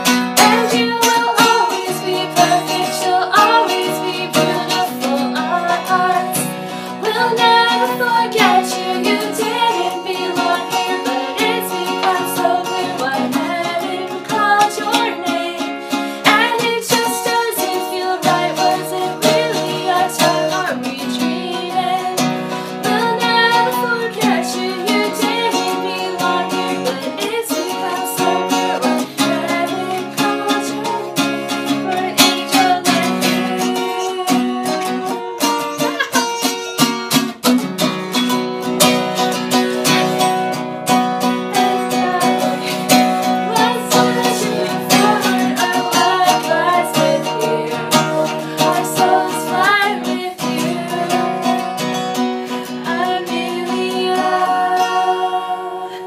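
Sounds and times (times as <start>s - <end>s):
women singing: 0.0s - 36.6s, 39.8s - 56.0s
acoustic guitar strummed: 0.0s - 56.0s.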